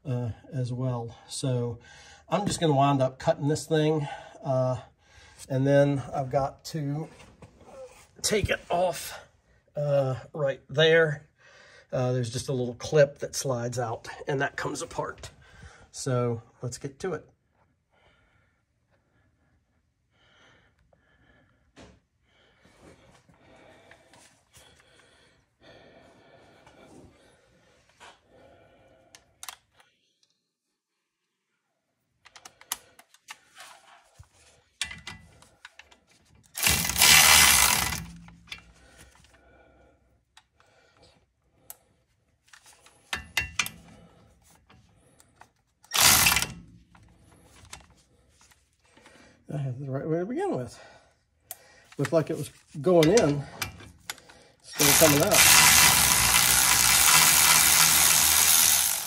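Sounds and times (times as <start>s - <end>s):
hand tools clicking and scraping metal: 34.8s - 39.4s, 42.5s - 48.5s, 51.9s - 59.0s.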